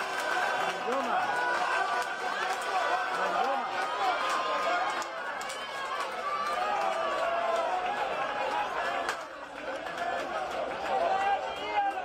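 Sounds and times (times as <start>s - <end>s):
people calling and chattering: 0.0s - 12.0s
stadium crowd ambience: 0.0s - 12.0s.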